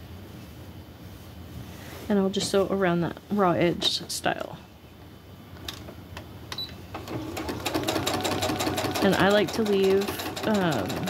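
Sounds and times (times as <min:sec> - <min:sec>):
sewing machine needle clatter: 0:07.0 - 0:11.0.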